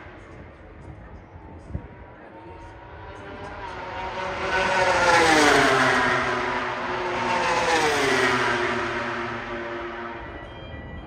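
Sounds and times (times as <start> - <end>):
race motorbikes passing at speed: 2.2 - 11.0.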